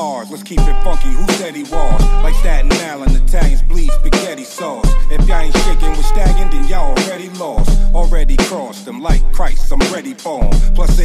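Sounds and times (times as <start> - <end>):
hip-hop beat: 0.0 - 11.0
vocal line: 0.0 - 11.0
deep sub-bass notes: 0.6 - 4.2, 4.9 - 7.0, 7.7 - 8.4, 10.6 - 11.0.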